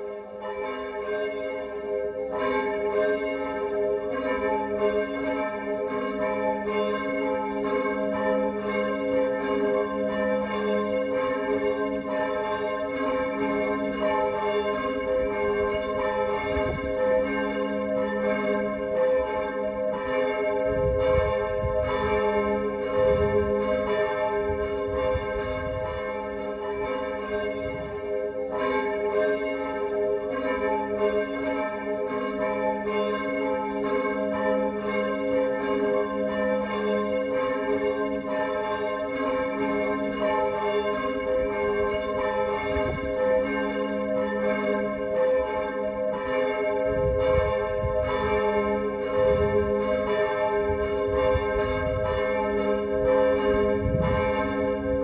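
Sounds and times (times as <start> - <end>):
church bells ringing: 0.0 - 55.0.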